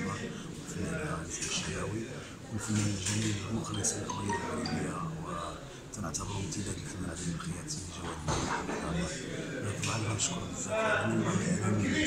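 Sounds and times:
man speaking: 3.4 - 5.6.

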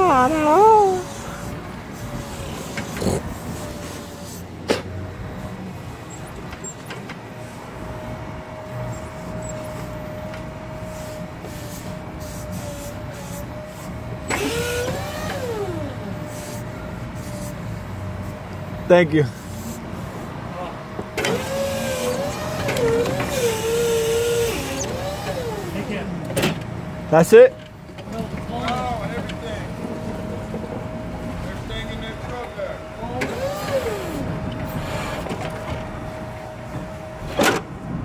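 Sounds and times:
forklift rumble and whine: 0.0 - 38.0.

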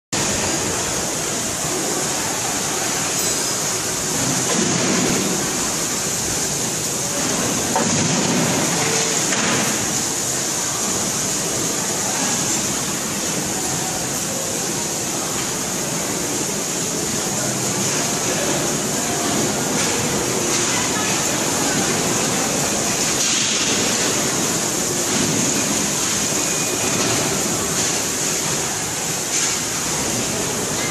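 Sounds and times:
winding machine running with hiss: 0.2 - 30.9.

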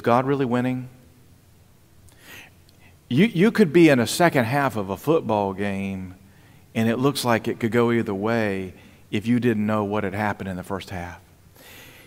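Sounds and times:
soft breath into microphone: 2.1 - 3.1, 6.2 - 6.7, 11.5 - 12.0.

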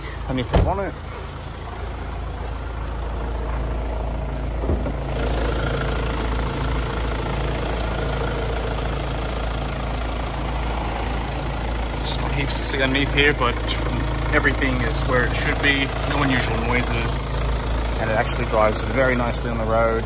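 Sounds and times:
diesel engine idling: 0.0 - 20.0.

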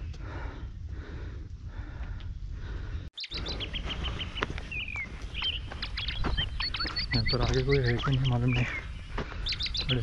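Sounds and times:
birds chirping: 1.9 - 10.0.

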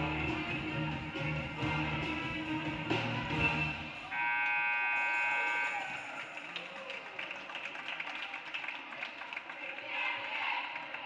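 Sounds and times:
scoreboard horn: 3.3 - 6.0
voices in a hall: 5.0 - 11.0.

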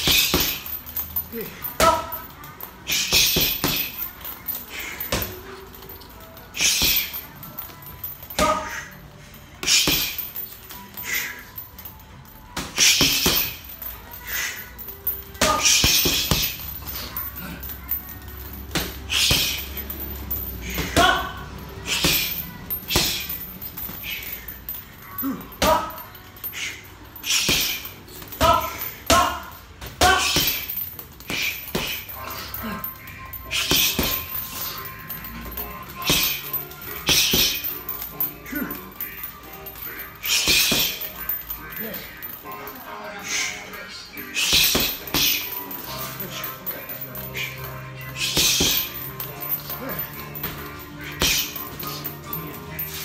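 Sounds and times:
background music: 0.0 - 53.0.

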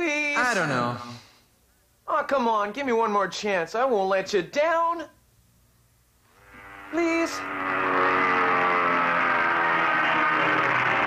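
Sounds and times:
faint held pitched tone: 6.3 - 9.6.

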